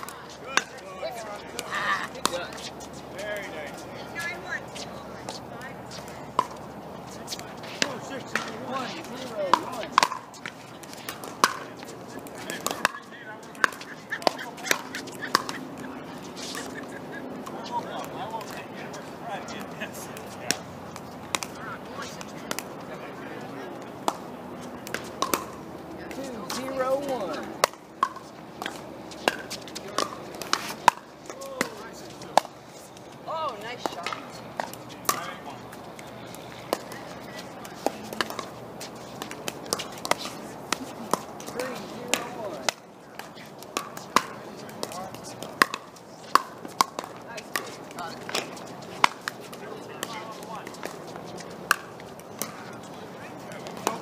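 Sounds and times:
paddles hitting plastic ball: 7.3s - 18.6s, 19.6s - 22.9s, 23.9s - 25.6s, 26.2s - 33.1s, 33.7s - 54.0s.

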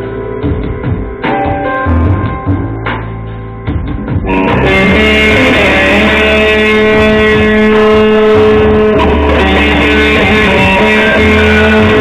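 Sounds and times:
electric guitar through amplifier: 0.0s - 12.0s.

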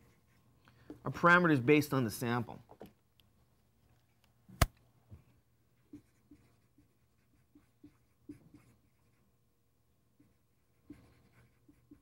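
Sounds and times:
marker writing on whiteboard: 5.9s - 9.3s, 10.2s - 12.0s.

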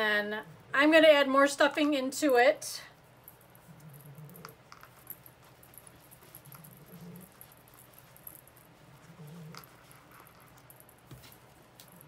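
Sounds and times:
stuffing rustling and squishing: 3.0s - 12.0s.

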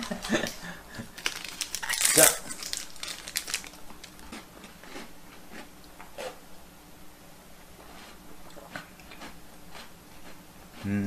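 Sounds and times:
plastic packaging crinkling: 0.0s - 4.4s.

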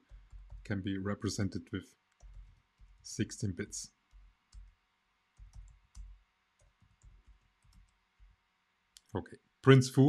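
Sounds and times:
typing on computer keyboard: 0.0s - 0.7s, 2.1s - 3.1s, 5.4s - 8.3s.

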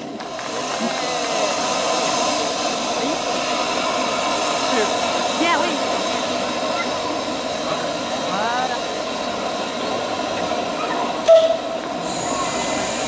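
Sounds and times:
steam locomotive hissing steam: 0.0s - 13.0s.

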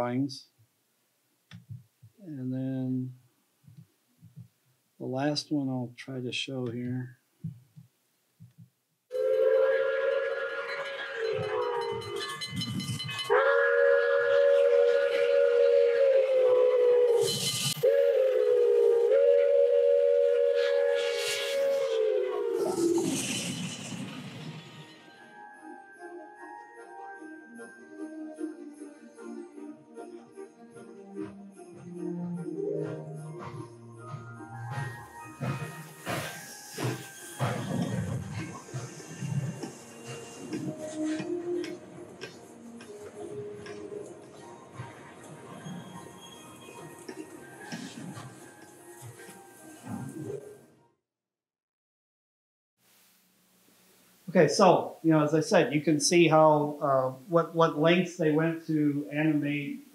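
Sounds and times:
steam locomotive whistle blasts: 9.1s - 25.4s, 33.4s - 45.0s
train passing rush and hiss: 9.1s - 25.4s, 32.7s - 50.6s.

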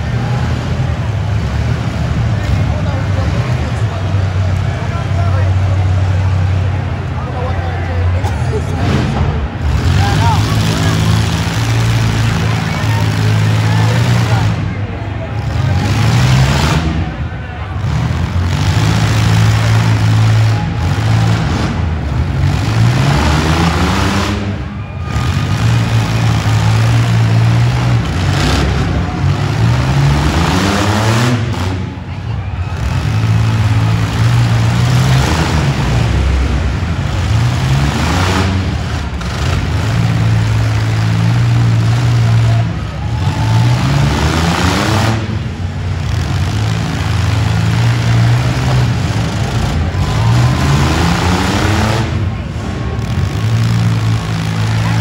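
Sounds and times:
engines revving hard: 0.0s - 55.0s
many engines running: 0.0s - 55.0s.

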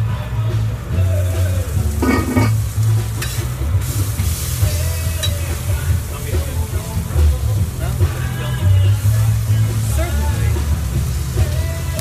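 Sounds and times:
food frying and sizzling: 0.0s - 12.0s
music playing: 0.0s - 12.0s.

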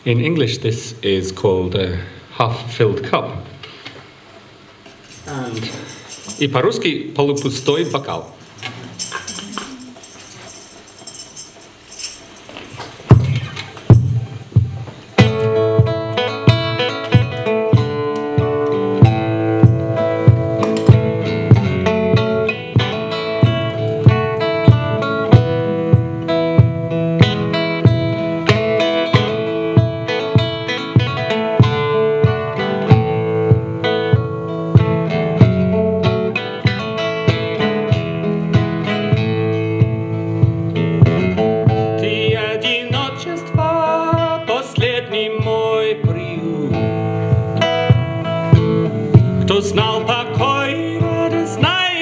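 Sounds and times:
acoustic guitar strumming: 7.4s - 52.0s.

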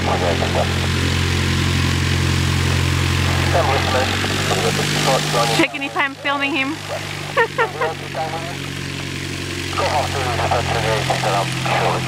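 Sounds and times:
light aircraft engine idling: 0.0s - 12.0s.

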